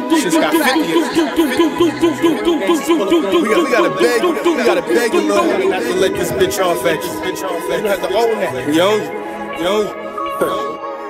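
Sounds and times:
overlapping voices: 0:00.0 - 0:08.1.

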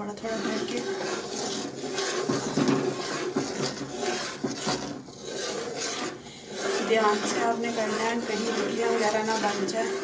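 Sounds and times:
metal spoon scraping metal pot: 0:00.0 - 0:10.0.

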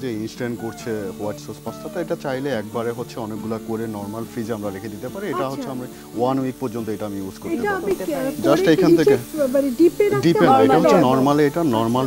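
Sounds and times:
person talking: 0:00.4 - 0:12.0.

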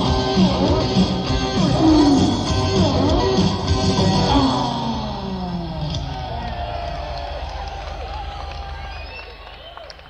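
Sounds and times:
audience shouting and whistling: 0:00.0 - 0:10.0
low hum from stage speakers: 0:00.0 - 0:10.0.

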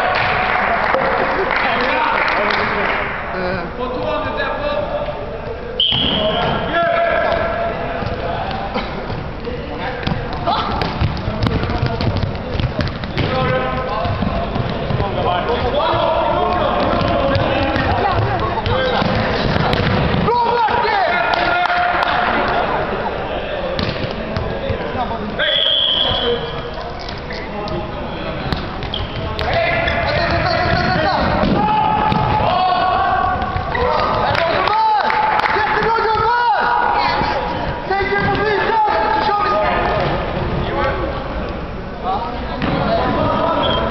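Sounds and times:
players' voices: 0:00.0 - 0:43.9
referee's whistle: 0:05.8 - 0:06.6, 0:25.4 - 0:26.7, 0:43.6 - 0:43.9
ball striking hall floor: 0:05.8 - 0:22.9, 0:23.6 - 0:40.6, 0:42.5 - 0:43.9
shoe squeak: 0:25.4 - 0:30.2, 0:43.5 - 0:43.9.

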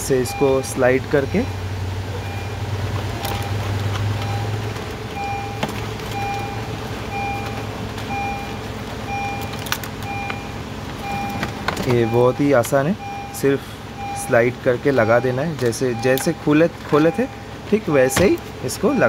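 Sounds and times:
car warning chime beeping: 0:00.0 - 0:03.6, 0:04.2 - 0:19.0.

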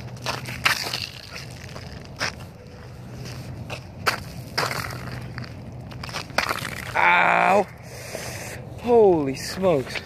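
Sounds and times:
shoe kicking ice on pavement: 0:00.0 - 0:02.5, 0:03.7 - 0:07.3.

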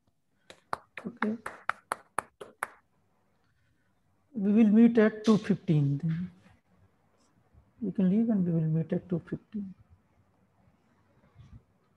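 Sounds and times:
sharp hand claps: 0:00.4 - 0:02.8.

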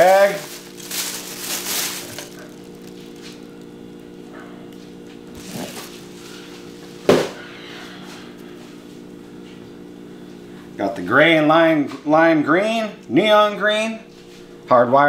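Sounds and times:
plastic bag rustling: 0:00.0 - 0:04.2, 0:04.9 - 0:06.7
steady low hum: 0:00.0 - 0:15.0.

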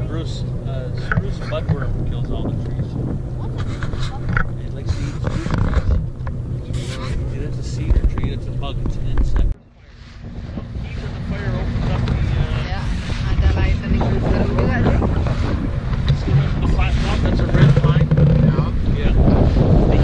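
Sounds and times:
motorboat engine hum: 0:00.0 - 0:20.0
wind rushing over microphone: 0:00.0 - 0:20.0.

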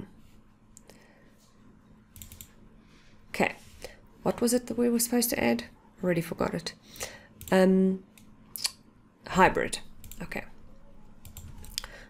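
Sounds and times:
computer mouse clicks: 0:02.1 - 0:02.6, 0:11.2 - 0:11.9.

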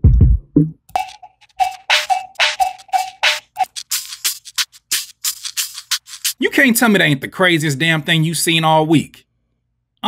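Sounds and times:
fast light drum ticks: 0:00.9 - 0:06.4.

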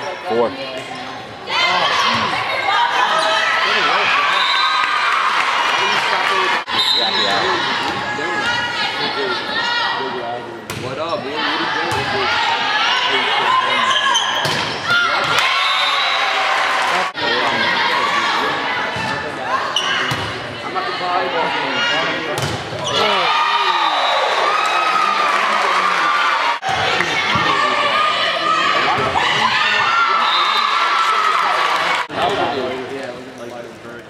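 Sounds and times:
crowd cheering and yelling: 0:01.4 - 0:10.3, 0:11.2 - 0:32.6
referee's whistle: 0:04.3 - 0:04.9, 0:06.7 - 0:07.5, 0:30.1 - 0:30.8.

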